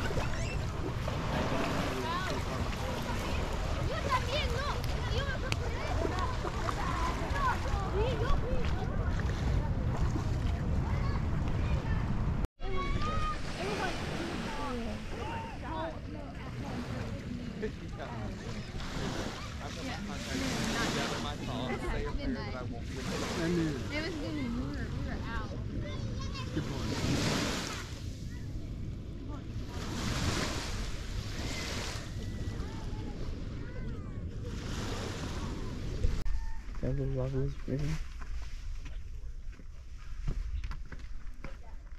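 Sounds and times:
small waves washing onto beach: 0.0s - 11.9s, 12.6s - 36.4s
wind buffeting microphone: 0.0s - 16.8s, 23.9s - 36.8s.

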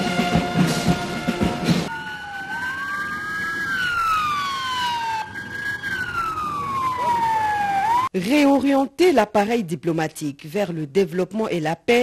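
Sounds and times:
police sirens wailing: 1.0s - 8.1s.

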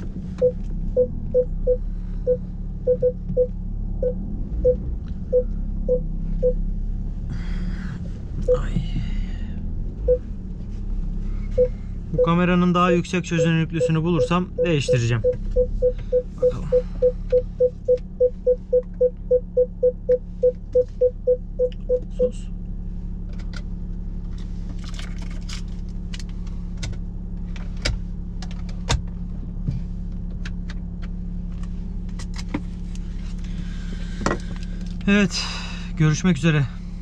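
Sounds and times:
parked car humming: 0.0s - 37.0s
parking sensor beeping rapidly: 0.4s - 6.6s, 8.4s - 8.7s, 10.0s - 10.3s, 11.5s - 22.4s.

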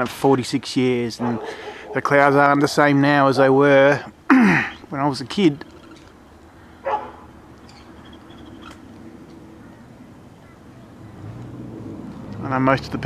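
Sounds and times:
dog barking: 1.2s - 2.0s, 6.8s - 7.2s.

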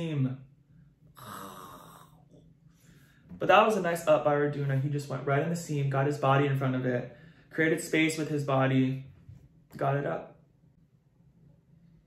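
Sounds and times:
man breathing close to microphone: 0.8s - 3.4s, 7.1s - 7.5s.

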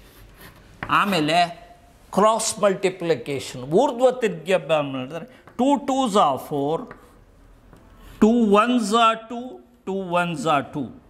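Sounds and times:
chalk scratching on blackboard: 0.0s - 1.2s.

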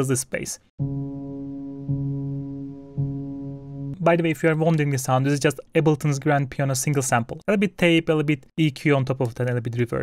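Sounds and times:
low piano bass note: 0.8s - 4.0s.

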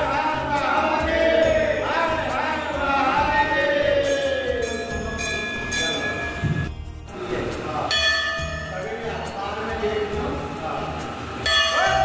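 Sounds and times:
ringing bell tones: 3.5s - 7.0s, 7.9s - 10.2s, 11.4s - 12.0s.

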